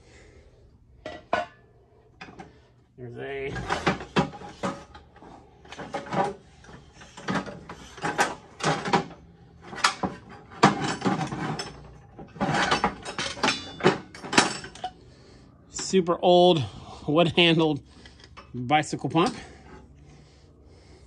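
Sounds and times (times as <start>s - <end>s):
metal tools clanking in a bin: 3.5s - 5.0s, 5.6s - 15.0s, 19.1s - 19.8s.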